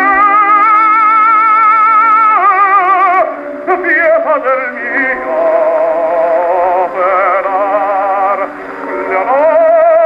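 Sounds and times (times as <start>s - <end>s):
operatic tenor singing: 0.0s - 10.0s
orchestra: 0.0s - 10.0s.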